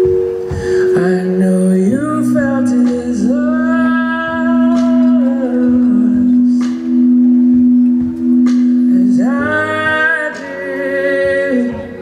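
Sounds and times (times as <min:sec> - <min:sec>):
sustained keyboard chord: 0:00.0 - 0:12.0.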